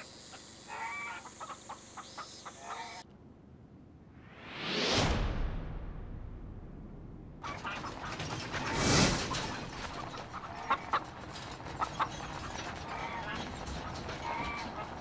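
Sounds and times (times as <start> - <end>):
chickens clucking: 0.0 - 3.0, 7.4 - 15.0
whooshes: 4.0 - 7.5, 8.5 - 9.9
road noise: 5.9 - 15.0.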